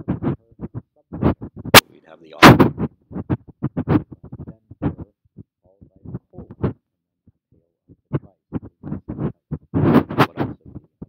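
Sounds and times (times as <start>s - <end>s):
man speaking: 1.8s - 2.6s, 10.2s - 10.8s.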